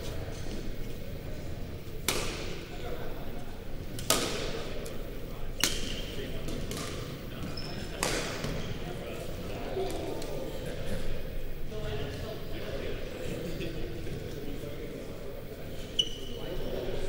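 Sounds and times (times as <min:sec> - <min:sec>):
racket hitting shuttlecock: 0:02.0 - 0:02.6, 0:04.0 - 0:04.6, 0:05.6 - 0:07.0, 0:08.0 - 0:08.6.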